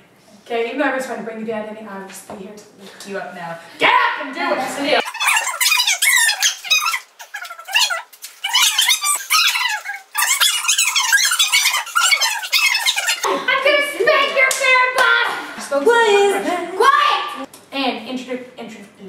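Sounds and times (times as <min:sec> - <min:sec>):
people talking: 0:00.3 - 0:05.1, 0:13.1 - 0:19.0.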